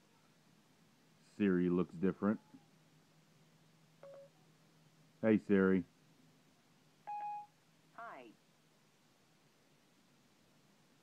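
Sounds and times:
short electronic beep: 4.0s - 4.3s, 7.1s - 7.5s.

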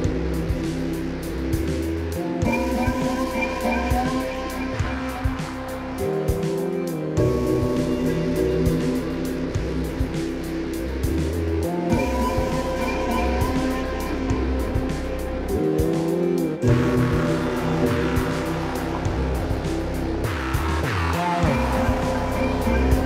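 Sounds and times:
drum loop beat: 0.0s - 23.0s
synthesizer chords: 0.0s - 23.0s.

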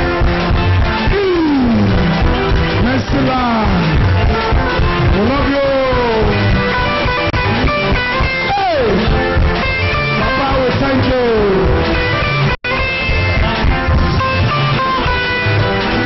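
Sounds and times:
electric bass guitar: 0.0s - 16.0s
keyboard: 0.0s - 16.0s
steady low drum beat: 0.0s - 16.0s.

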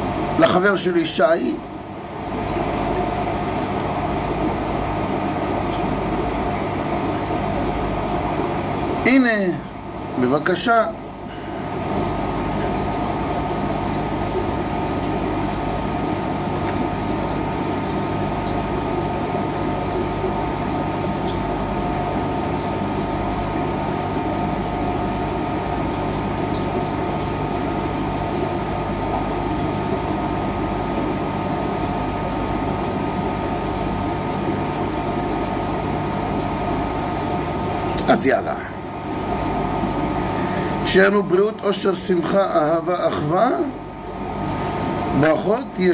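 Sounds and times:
aquarium pump hum: 0.0s - 45.9s.

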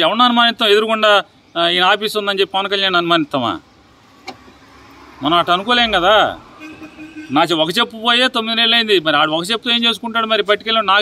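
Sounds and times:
man speaking: 0.0s - 3.7s, 5.2s - 6.4s, 7.3s - 11.0s
vehicle in background: 3.3s - 9.3s.

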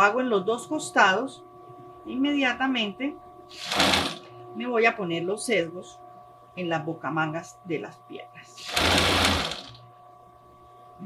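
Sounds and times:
sewing machine stitching: 3.5s - 4.3s, 8.6s - 9.8s.

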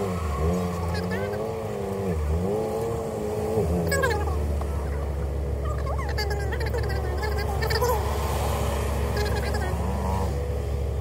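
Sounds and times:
car cabin and engine hum: 0.0s - 11.0s.

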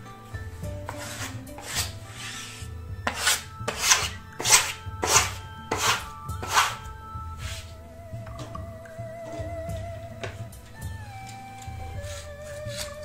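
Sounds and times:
faint background music: 0.0s - 13.0s
hand rubbing wallpaper: 0.8s - 7.8s, 11.4s - 13.0s.

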